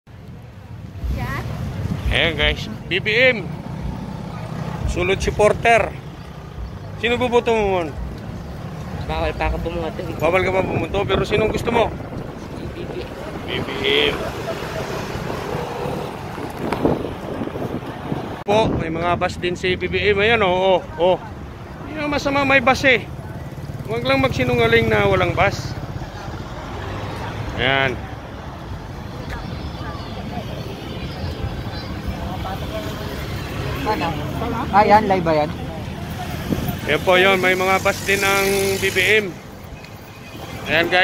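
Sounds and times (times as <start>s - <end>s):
traffic rumble: 0.1s - 41.0s
faint voices: 25.4s - 39.8s.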